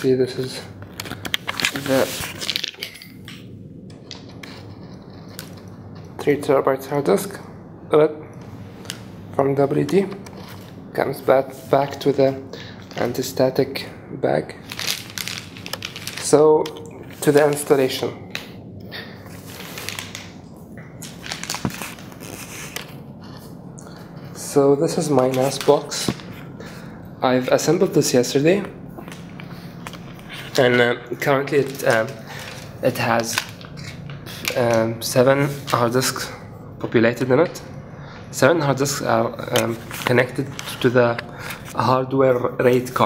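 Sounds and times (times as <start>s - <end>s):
crackling rustling handling noise: 0.3s - 6.2s, 14.6s - 18.4s, 19.2s - 36.3s, 38.6s - 41.9s
plastic packaging crinkling: 0.8s - 3.2s, 14.6s - 17.9s, 19.3s - 20.4s, 21.0s - 23.0s, 31.5s - 34.8s.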